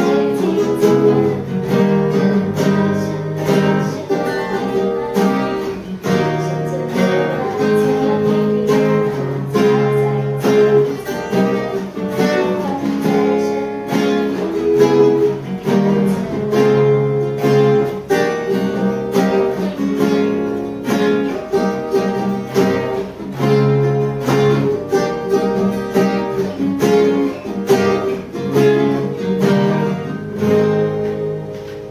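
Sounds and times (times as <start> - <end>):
woman singing: 0.0 - 31.2
acoustic guitars strumming: 0.0 - 31.9.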